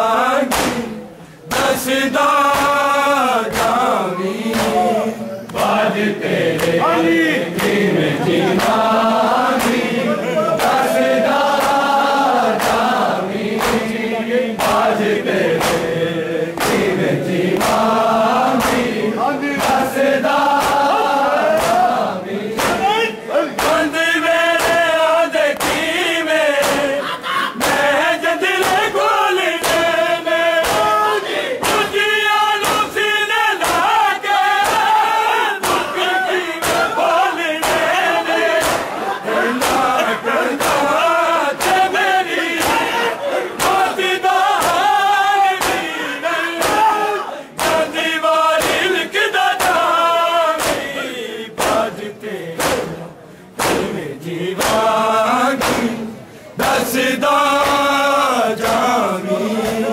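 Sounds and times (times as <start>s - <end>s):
men chanting in unison: 0.0s - 59.9s
hands slapping bare chests: 0.4s - 0.9s, 1.5s - 1.8s, 2.4s - 2.8s, 3.5s - 3.8s, 4.5s - 4.8s, 5.5s - 5.8s, 6.5s - 6.8s, 7.5s - 10.0s, 10.6s - 13.9s, 14.6s - 16.0s, 16.6s - 17.9s, 18.5s - 19.0s, 19.6s - 19.9s, 20.5s - 22.0s, 22.6s - 22.9s, 23.6s - 23.9s, 24.6s - 24.9s, 25.5s - 25.9s, 26.6s - 26.9s, 27.6s - 27.9s, 28.6s - 29.0s, 29.6s - 30.0s, 30.6s - 31.0s, 31.6s - 32.0s, 32.6s - 33.0s, 33.6s - 34.0s, 34.6s - 35.0s, 35.6s - 36.0s, 36.6s - 38.0s, 38.6s - 42.0s, 42.6s - 42.9s, 43.6s - 45.0s, 45.6s - 45.9s, 46.6s - 47.0s, 47.6s - 48.0s, 48.6s - 49.0s, 49.6s - 50.0s, 50.6s - 51.0s, 51.6s - 52.0s, 52.6s - 53.0s, 53.6s - 54.0s, 54.6s - 55.0s, 55.6s - 56.0s, 57.6s - 57.9s, 58.6s - 58.9s.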